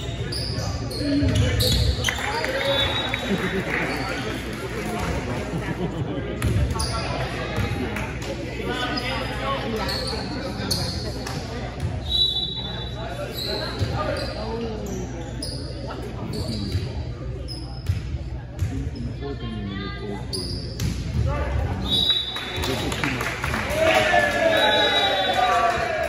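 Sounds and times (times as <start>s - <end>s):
sneakers squeaking on gym floor: 0.0s - 3.1s, 11.9s - 19.2s, 20.3s - 21.1s
voices echoing: 0.0s - 26.0s.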